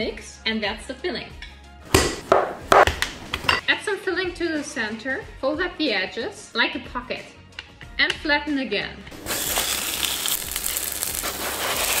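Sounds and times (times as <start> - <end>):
dough sizzling in a hot pan: 9.2 - 12.0.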